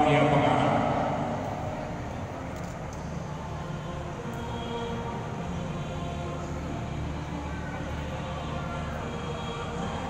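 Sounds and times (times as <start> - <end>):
announcer voice echoing: 0.0 - 1.4
indoor sports hall noise: 0.0 - 10.0.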